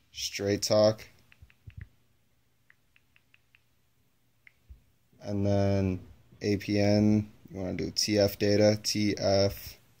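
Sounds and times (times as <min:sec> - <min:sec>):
phone keyboard clicks: 0:01.2 - 0:01.9, 0:02.7 - 0:03.7.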